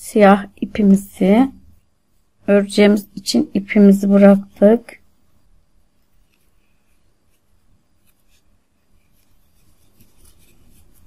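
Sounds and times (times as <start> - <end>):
crochet hook scratching yarn: 5.9 - 11.0.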